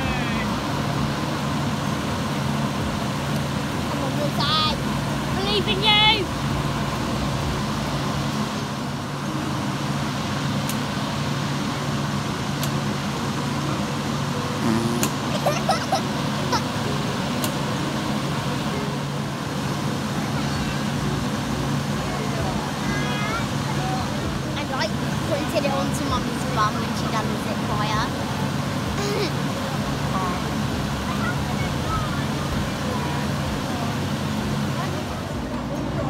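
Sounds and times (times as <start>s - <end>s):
steady low outdoor hum: 0.0s - 36.0s.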